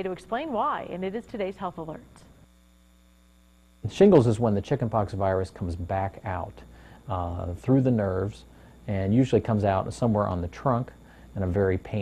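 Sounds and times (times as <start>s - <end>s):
electrical mains hum: 0.0s - 12.0s
man speaking: 3.8s - 12.0s.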